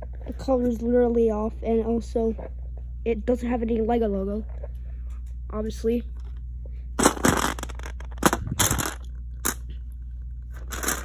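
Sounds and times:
plastic crunching and scraping: 0:07.0 - 0:09.7, 0:10.4 - 0:11.0.

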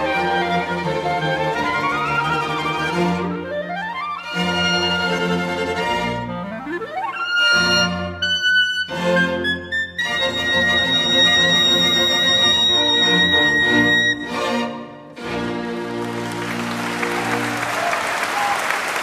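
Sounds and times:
solo clarinet: 0:00.0 - 0:14.6
string orchestra: 0:00.0 - 0:18.5.

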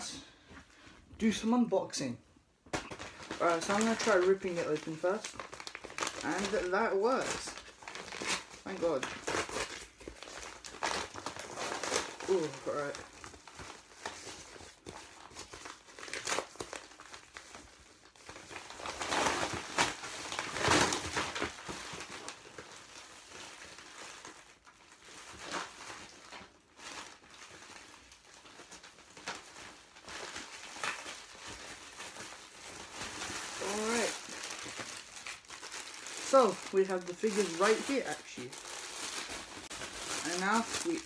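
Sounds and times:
paper and plastic crinkling: 0:02.7 - 0:41.0.

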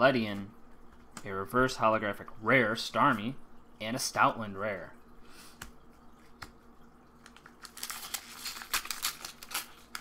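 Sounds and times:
foil wrapper crinkling: 0:07.2 - 0:10.0.

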